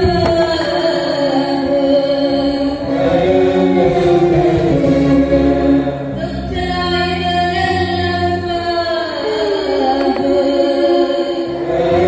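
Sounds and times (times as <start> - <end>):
small string ensemble: 0.2 - 6.7, 9.1 - 12.0.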